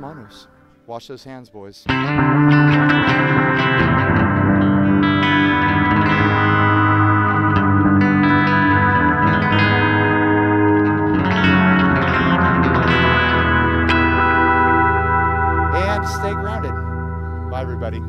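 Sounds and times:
distorted electric guitar chords: 1.9s - 18.0s.

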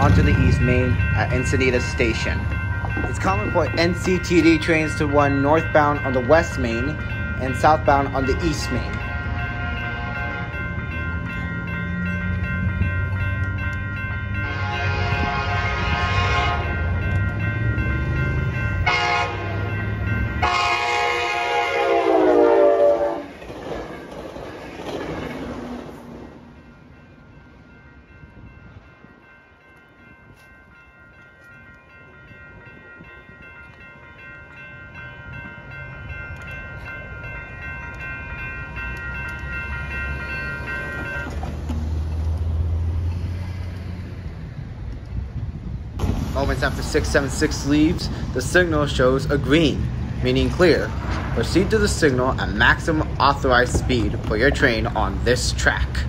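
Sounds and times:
crossing warning bell ringing: 0.0s - 56.0s
diesel train rumble: 0.0s - 56.0s
train horn blasts: 9.1s - 10.6s, 14.4s - 16.8s, 18.8s - 19.7s, 20.4s - 23.4s.

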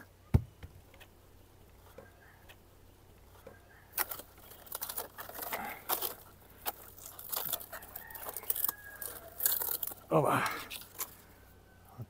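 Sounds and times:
coconut stalk crackling and tearing: 3.3s - 11.4s.

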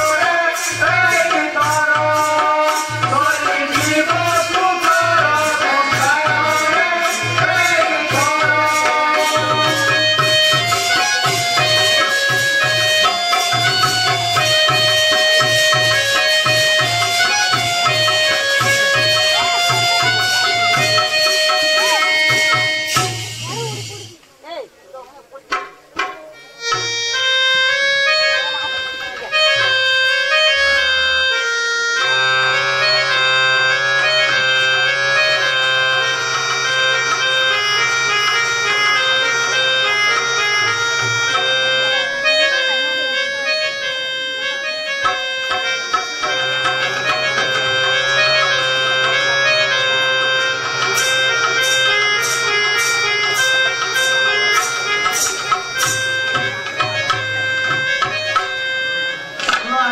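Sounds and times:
reed instrument melody: 0.0s - 59.9s
sharp metallic strikes: 50.7s - 56.8s.

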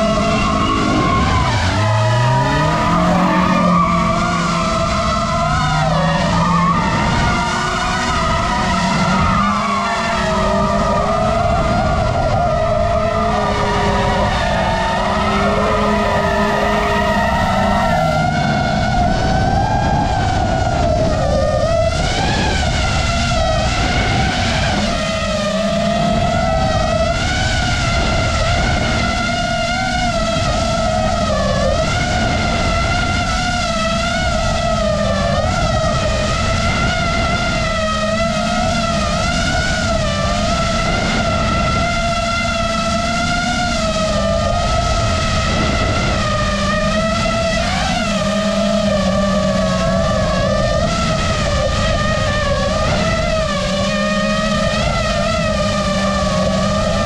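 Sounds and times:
drone motors whining: 0.0s - 57.0s
wind rumble on microphone: 0.0s - 57.0s.

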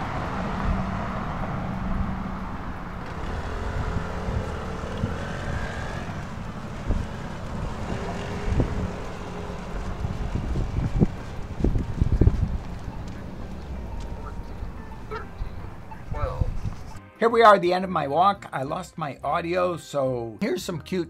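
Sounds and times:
car passing: 0.0s - 17.0s
road traffic: 0.0s - 17.0s
wind on microphone: 0.0s - 17.0s.

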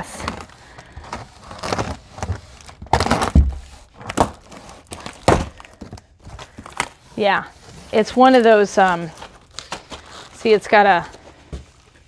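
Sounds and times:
cardboard and plastic rustling: 0.0s - 12.0s
dull thumps: 2.3s - 4.4s.

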